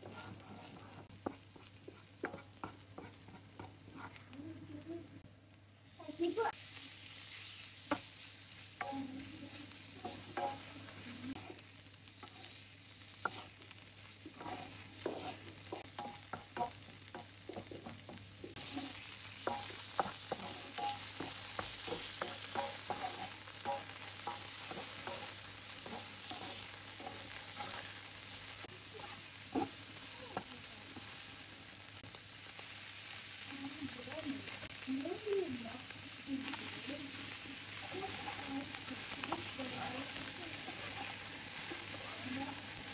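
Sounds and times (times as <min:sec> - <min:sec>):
utensils scraping a pan: 0:00.0 - 0:04.2, 0:08.8 - 0:11.6, 0:13.2 - 0:28.0, 0:36.5 - 0:42.9
meat sizzling in a frying pan: 0:00.0 - 0:42.9.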